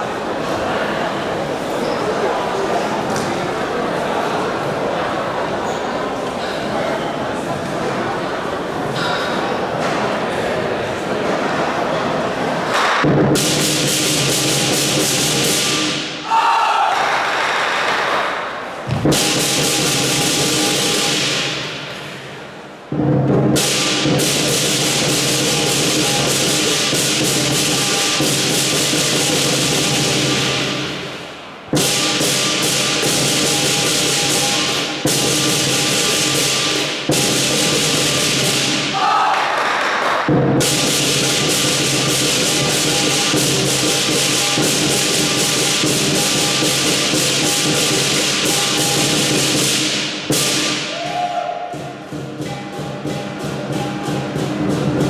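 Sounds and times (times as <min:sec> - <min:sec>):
large drum beating: 0:13.0 - 0:16.0, 0:18.8 - 0:21.9, 0:22.8 - 0:31.0
crashing cymbals: 0:19.1 - 0:21.9, 0:23.5 - 0:39.0, 0:40.6 - 0:51.1.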